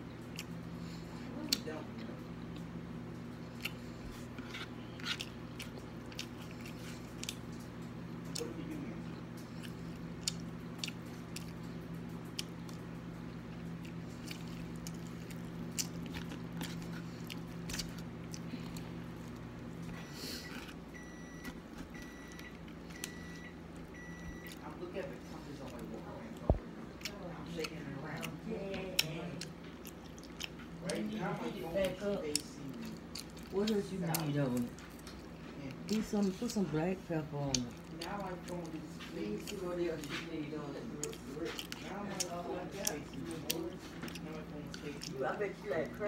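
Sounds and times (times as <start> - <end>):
person chewing food: 0.0 - 36.6, 37.5 - 46.0
steady low hum: 0.0 - 46.0.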